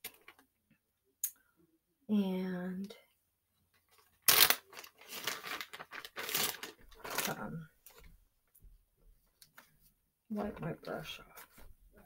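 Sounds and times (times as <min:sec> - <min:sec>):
scratchy rubbing and crinkling: 0:03.8 - 0:08.1.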